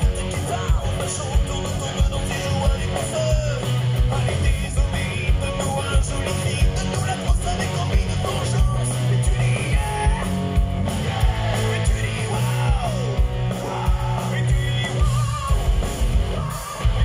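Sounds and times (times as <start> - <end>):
man singing: 0.0 - 10.5, 11.1 - 17.0
live rock band playing: 0.0 - 17.0
pounding drum beat: 0.0 - 17.0.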